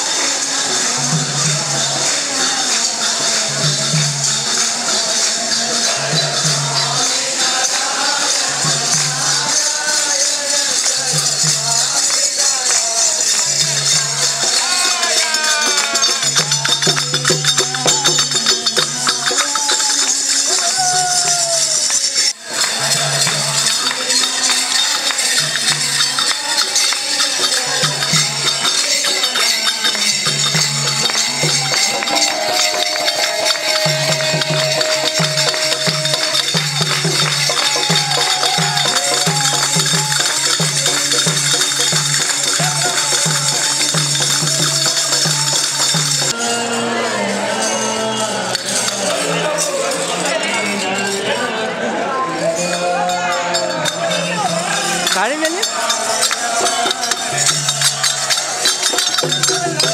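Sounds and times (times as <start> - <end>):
group singing devotional song: 0.0 - 59.9
high jingling percussion: 0.0 - 59.9
hand clapping: 14.6 - 46.4, 55.0 - 59.9
barrel drum beating: 30.1 - 46.3.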